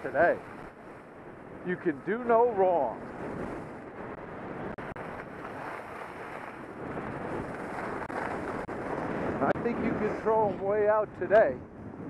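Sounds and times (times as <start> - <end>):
wind rushing over microphone: 0.0 - 12.0
skis sliding on snow: 5.0 - 10.3.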